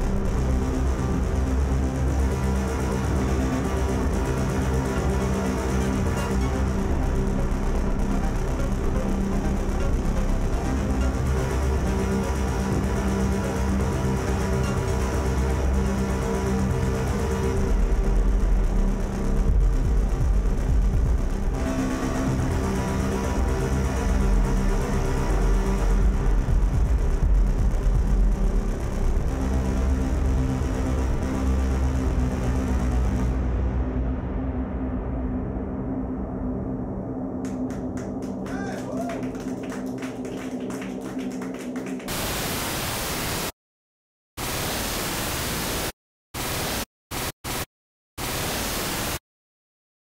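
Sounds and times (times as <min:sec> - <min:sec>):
deep bass rumble: 0:00.0 - 0:42.0
electronic noise music: 0:00.0 - 0:43.5
white-noise static bursts: 0:42.0 - 0:43.6, 0:44.4 - 0:49.2.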